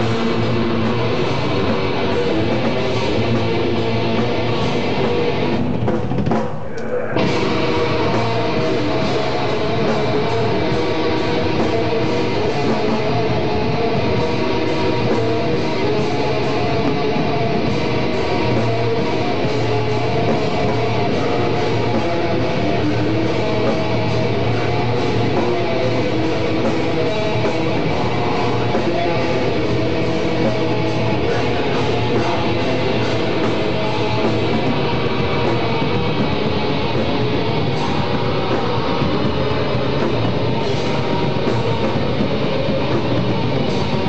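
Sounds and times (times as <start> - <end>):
live band electric guitar music: 0.0 - 44.0.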